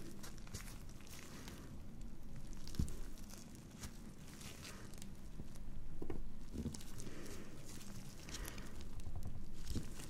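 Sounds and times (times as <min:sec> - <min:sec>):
paper tissues crinkling: 0:00.0 - 0:05.6, 0:06.5 - 0:10.0.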